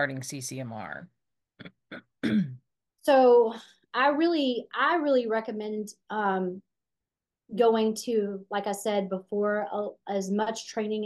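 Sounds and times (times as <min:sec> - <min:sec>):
person clearing throat: 0:01.9 - 0:02.6.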